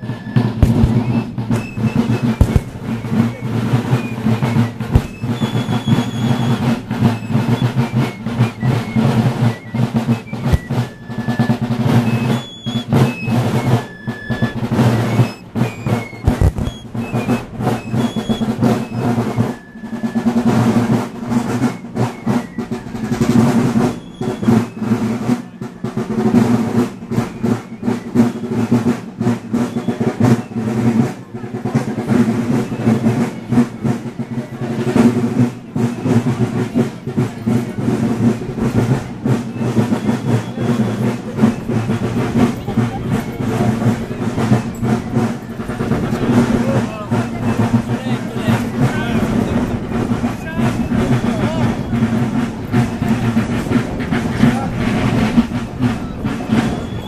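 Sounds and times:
crowd voices: 0:00.0 - 0:57.0
marching band playing: 0:00.0 - 0:57.0
snare drum rolls: 0:00.0 - 0:57.0.

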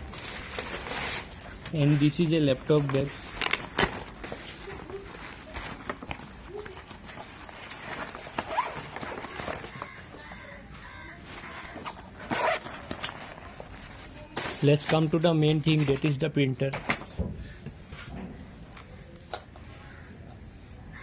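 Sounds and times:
fabric bag rustling: 0:00.0 - 0:16.2.

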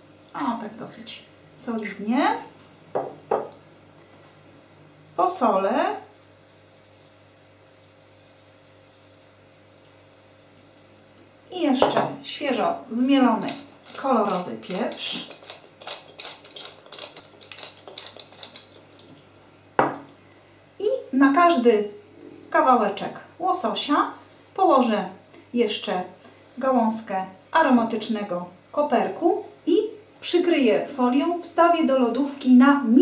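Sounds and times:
woman's voice: 0:00.4 - 0:02.5, 0:05.2 - 0:06.1, 0:11.5 - 0:15.3, 0:20.8 - 0:33.0.

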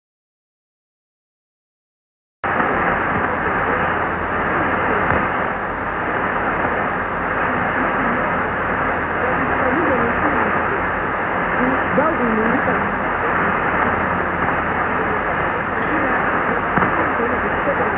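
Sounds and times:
muffled radio static hiss: 0:02.4 - 0:17.9
faint voice on radio: 0:07.3 - 0:17.9.

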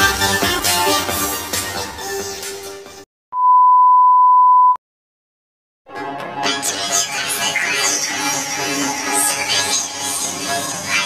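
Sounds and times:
steady high test tone beep: 0:03.4 - 0:04.8.

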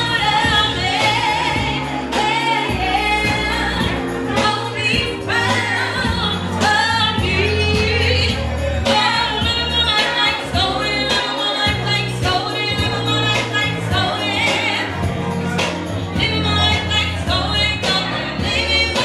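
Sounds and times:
accompanying music with bass line: 0:00.0 - 0:19.0
woman singing into microphone: 0:00.0 - 0:19.0.

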